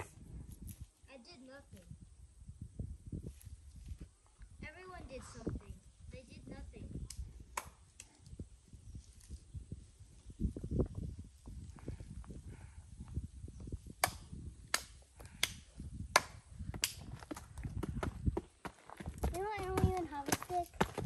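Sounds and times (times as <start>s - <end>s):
child's voice: 1.1s - 2.0s, 4.6s - 7.0s, 19.2s - 21.0s
sharp clicks of shoes on stone: 16.2s - 21.0s
footsteps on dirt trail with leaves: 17.0s - 21.0s.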